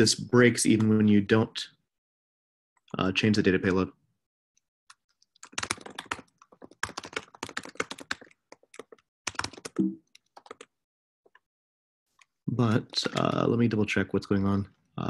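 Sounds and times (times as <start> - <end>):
fast keyboard typing: 5.1 - 10.8, 12.8 - 14.7.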